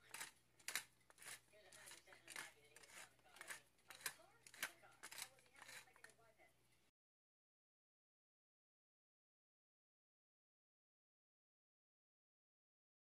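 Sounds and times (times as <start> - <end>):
pepper mill grinding: 0.0 - 6.3.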